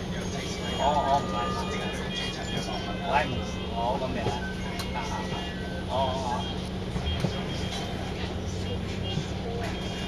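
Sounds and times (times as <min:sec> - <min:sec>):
bus diesel engine droning: 0:00.0 - 0:10.0.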